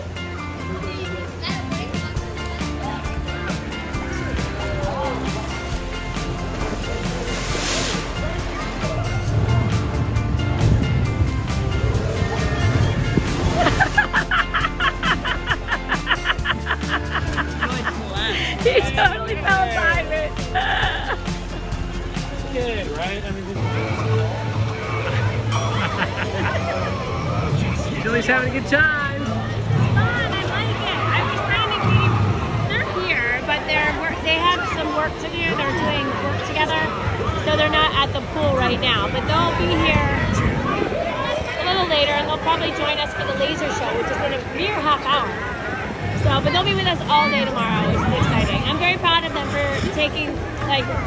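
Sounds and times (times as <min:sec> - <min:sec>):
crowd chatter: 0:00.0 - 0:51.0
music with steady beat: 0:01.4 - 0:23.0
rushing noise: 0:05.4 - 0:14.1
people talking: 0:17.0 - 0:21.2, 0:22.4 - 0:51.0.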